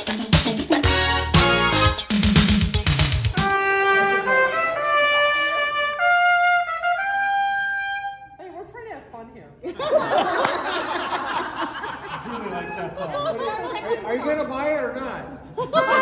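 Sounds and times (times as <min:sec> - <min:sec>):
intro music with a beat: 0:00.0 - 0:03.8
trumpet playing held notes: 0:03.4 - 0:08.4.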